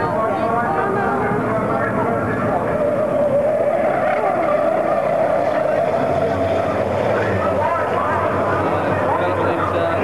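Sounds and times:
truck diesel engines racing: 0.0 - 10.0.

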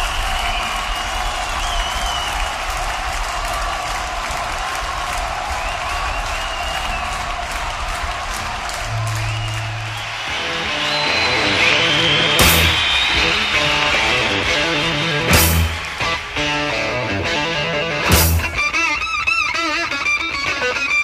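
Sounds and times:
whistles: 0.0 - 2.8, 5.4 - 7.4, 8.8 - 16.6
audience applauding and cheering: 0.0 - 20.7
low steady instrument note: 8.9 - 10.2.

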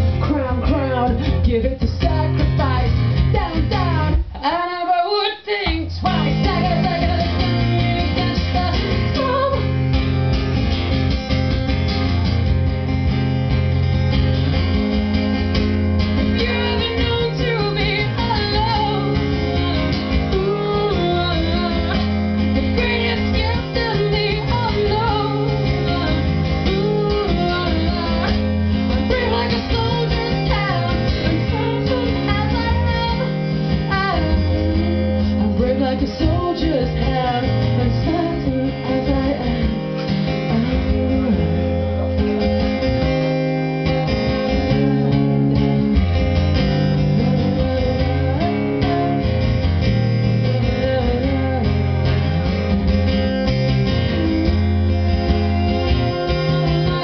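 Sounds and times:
woman singing: 0.0 - 9.9, 16.2 - 43.1, 46.9 - 52.8, 53.8 - 57.0
acoustic guitar strummed: 5.7 - 57.0.

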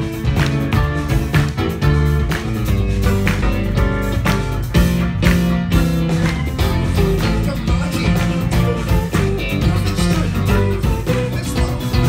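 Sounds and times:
bass guitar: 0.0 - 12.0
drum kit: 0.0 - 12.0
electric guitar: 0.0 - 12.0
keyboard: 0.0 - 12.0.

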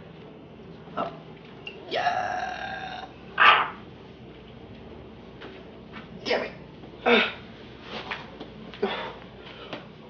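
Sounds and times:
man grunting: 1.9 - 3.2.

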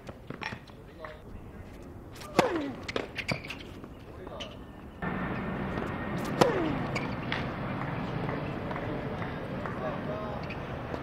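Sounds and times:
racket striking tennis ball: 2.1 - 3.8, 5.4 - 8.8
tennis ball bounce: 2.2 - 3.2, 5.7 - 9.8.

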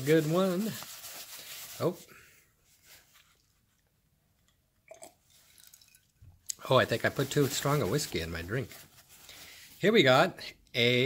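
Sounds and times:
paper towel rustling: 0.0 - 3.8, 6.6 - 10.2.

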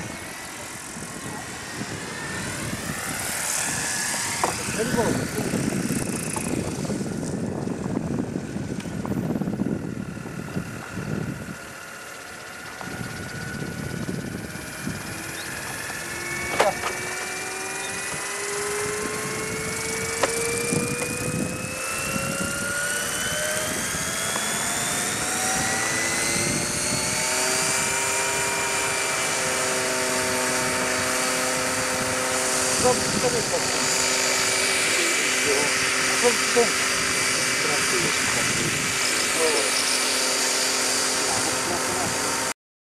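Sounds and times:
electric motor whining: 0.0 - 42.6.

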